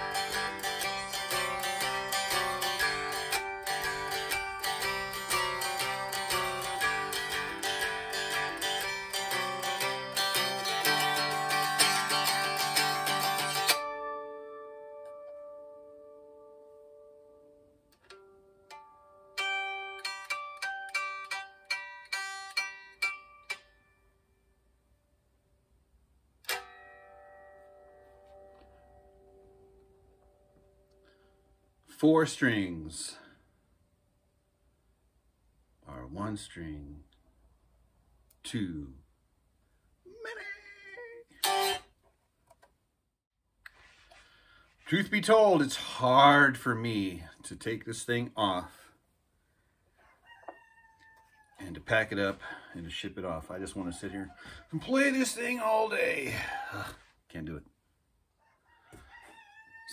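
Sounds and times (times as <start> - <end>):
cigar box guitar plucked notes: 0.0 - 24.1, 26.4 - 31.1, 41.4 - 42.0
guitar strum ringing: 0.0 - 24.5, 26.4 - 31.2, 41.4 - 42.0
rooster crowing: 50.0 - 51.6, 54.3 - 54.6, 58.4 - 59.9.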